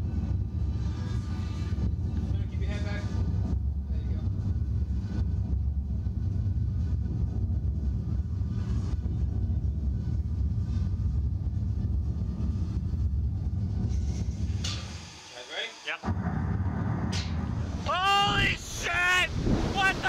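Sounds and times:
low mechanical rumble: 0:00.0 - 0:15.0, 0:16.0 - 0:20.0.

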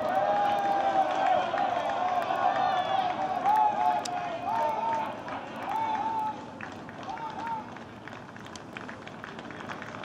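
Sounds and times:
faint crowd noise: 0:00.0 - 0:10.0.

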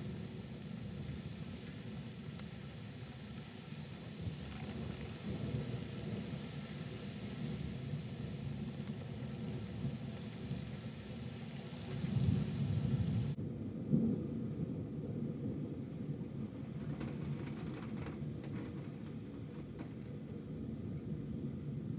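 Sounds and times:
heavy rain: 0:00.0 - 0:21.9
rolling thunder rumble: 0:00.0 - 0:21.9.

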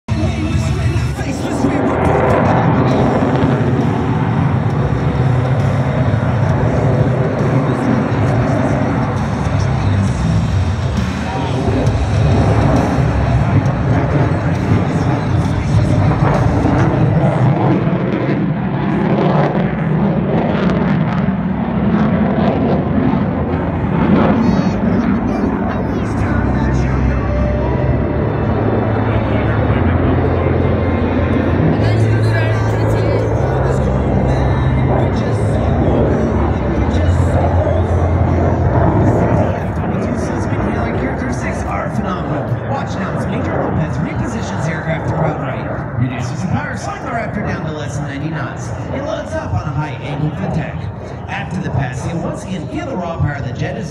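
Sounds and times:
music: 0:00.1 - 0:17.8, 0:24.4 - 0:39.4
jet flying overhead: 0:00.1 - 0:53.9.

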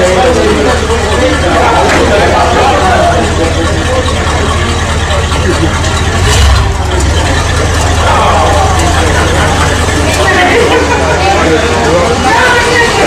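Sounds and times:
car engine idling: 0:00.0 - 0:13.0
people talking: 0:00.0 - 0:13.0.

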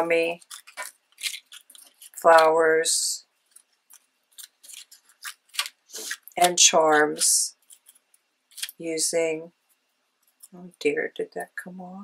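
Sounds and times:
paper crinkling: 0:00.0 - 0:02.5, 0:03.3 - 0:08.8.

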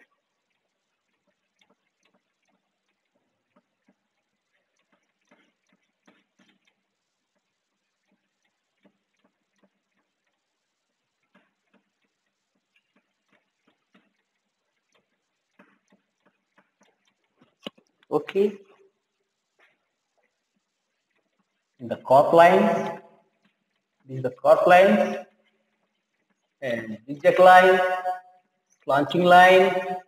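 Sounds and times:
chalk tapping and scratching on chalkboard: 0:00.0 - 0:18.0.

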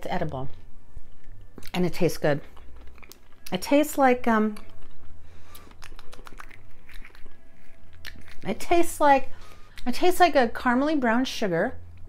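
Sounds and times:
steady low hum: 0:00.0 - 0:12.0
lips smacking and wet clicks: 0:04.6 - 0:08.5.

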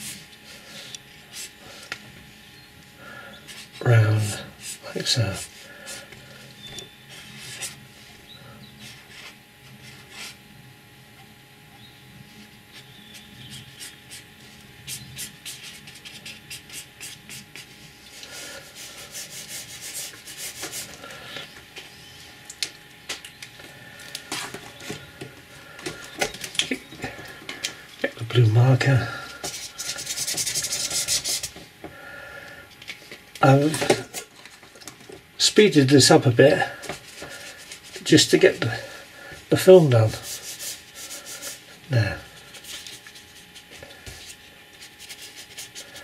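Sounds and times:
pen scratching on paper: 0:14.9 - 0:17.7, 0:29.5 - 0:31.5, 0:44.8 - 0:46.0.

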